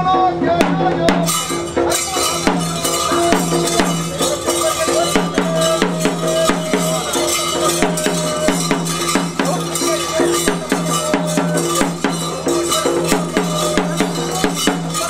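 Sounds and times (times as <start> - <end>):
barrel drums beaten: 0.5 - 15.0
sustained ringing tones: 1.3 - 15.0.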